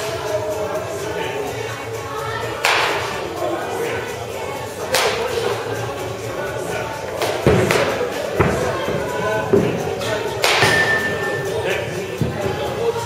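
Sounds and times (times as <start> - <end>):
background music: 0.0 - 13.0
voices: 0.0 - 13.0
baseball bat cracking: 2.6 - 3.2, 4.9 - 5.4, 7.2 - 11.3.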